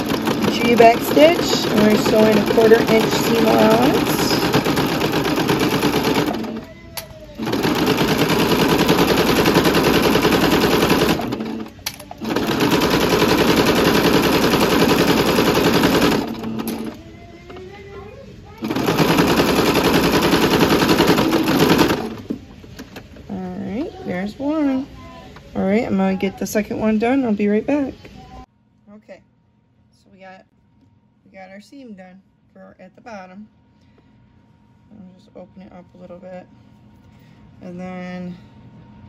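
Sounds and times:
sewing machine stitching: 0:00.0 - 0:06.7, 0:07.3 - 0:17.0, 0:18.6 - 0:23.2.

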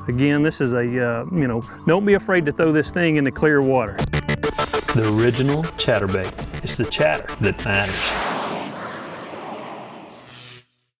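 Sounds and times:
broad rushing noise: 0:07.0 - 0:10.5.

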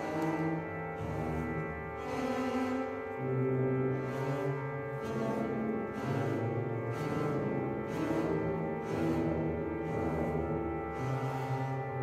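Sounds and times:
orchestra playing sustained chords: 0:00.0 - 0:12.0.

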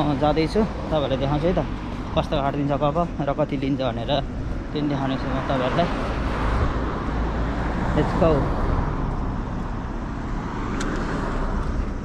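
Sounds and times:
cars passing on street: 0:00.0 - 0:12.0.

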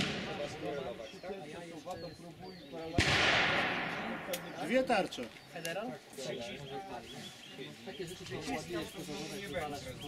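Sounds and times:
revolver shot with echo: 0:03.0 - 0:04.6.

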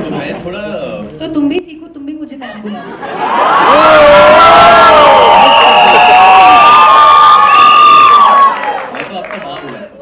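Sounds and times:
crowd cheering and screaming: 0:03.1 - 0:08.9.

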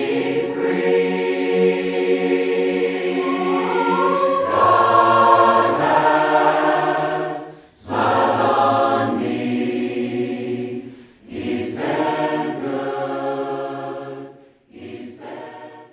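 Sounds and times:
choir singing held chords: 0:00.0 - 0:15.9.

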